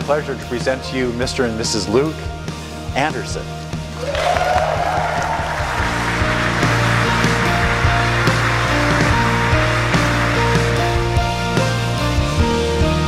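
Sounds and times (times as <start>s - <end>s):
music with long held notes: 0.0s - 13.0s
crowd applauding and cheering: 3.9s - 12.0s
rising whoop: 4.0s - 7.6s.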